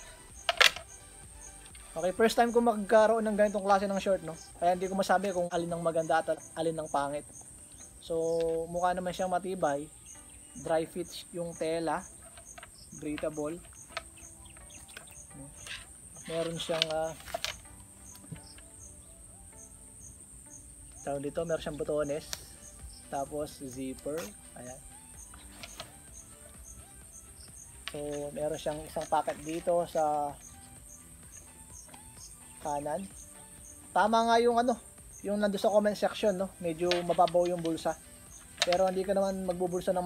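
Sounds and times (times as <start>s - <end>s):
faint steady background: 0.0s - 40.0s
insects buzzing and chirping: 0.0s - 40.0s.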